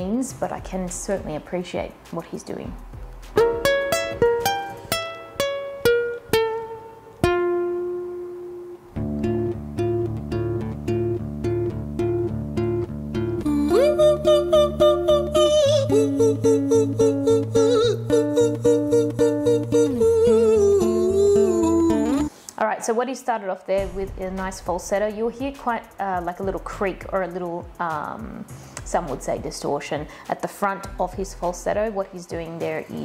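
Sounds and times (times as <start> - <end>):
acoustic guitar arpeggio: 3.4 - 22.3
man singing falsetto: 13.6 - 22.3.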